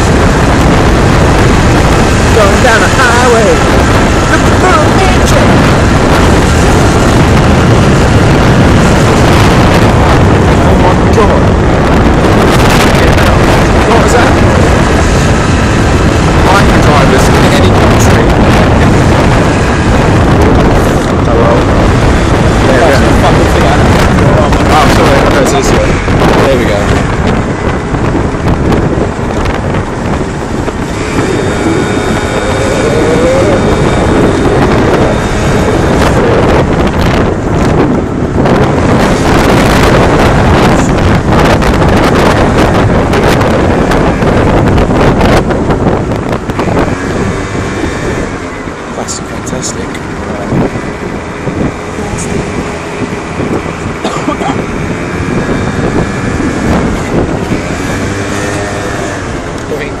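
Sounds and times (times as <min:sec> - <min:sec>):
moped engine revving: 0:00.0 - 1:00.0
wind buffeting microphone: 0:00.0 - 1:00.0.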